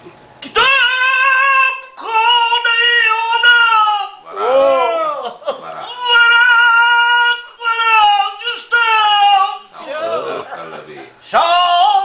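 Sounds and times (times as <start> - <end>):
elderly man singing: 0.4 - 4.3, 5.8 - 9.8, 11.2 - 12.0.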